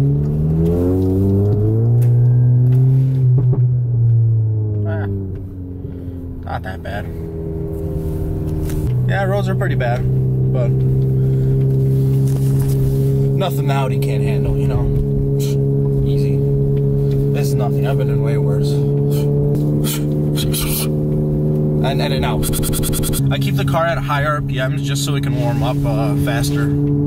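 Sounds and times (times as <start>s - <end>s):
car engine drone from inside: 0.0s - 27.0s.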